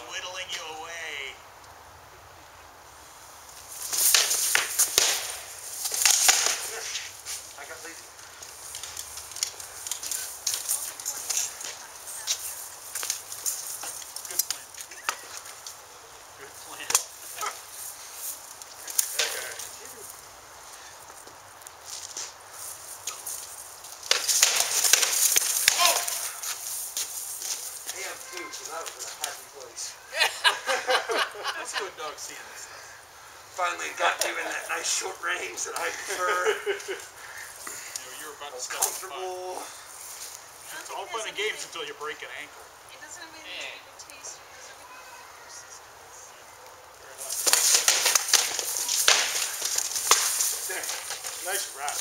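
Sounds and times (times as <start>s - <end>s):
rattling mail and plate: 47.2s - 52.0s.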